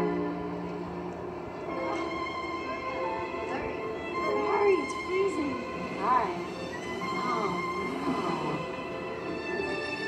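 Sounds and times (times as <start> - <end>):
soft film score music: 0.0 - 10.0.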